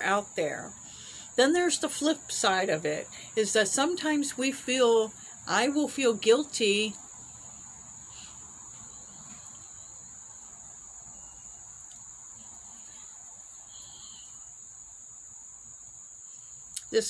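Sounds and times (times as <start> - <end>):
insects trilling: 0.0 - 17.0.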